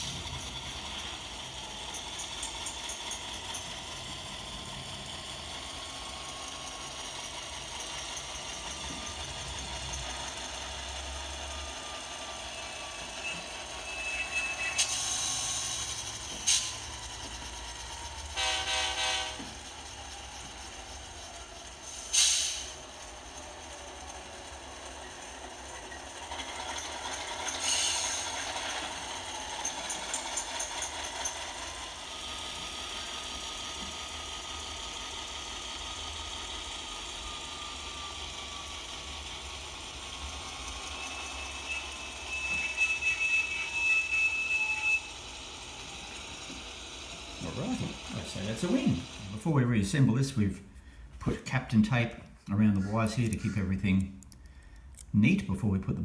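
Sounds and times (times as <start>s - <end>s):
model train motor whirring: 0.0s - 50.9s.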